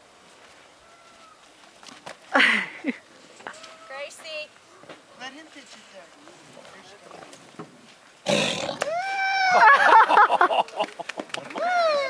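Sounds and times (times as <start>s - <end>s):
tiger snarling: 8.2s - 8.9s
high rising and falling cry: 8.8s - 10.1s, 11.6s - 12.0s
excited voices: 8.8s - 12.0s.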